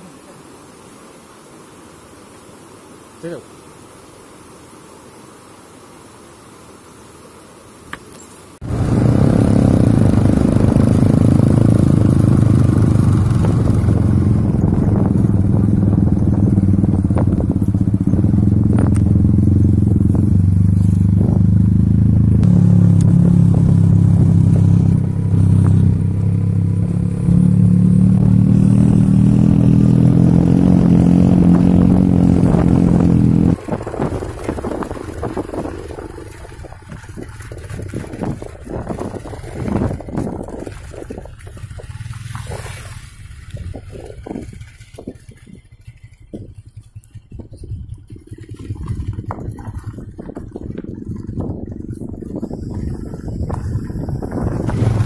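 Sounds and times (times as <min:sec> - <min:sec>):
outdoor noise: 0:00.0 - 0:55.0
motorcycle engine running: 0:08.6 - 0:55.0.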